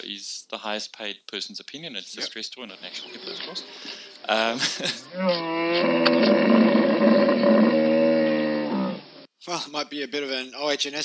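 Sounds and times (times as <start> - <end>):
long animal bellow: 5.1 - 9.1.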